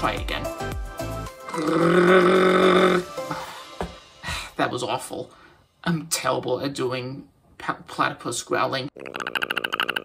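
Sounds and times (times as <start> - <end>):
man imitating a growl: 1.5 - 3.2.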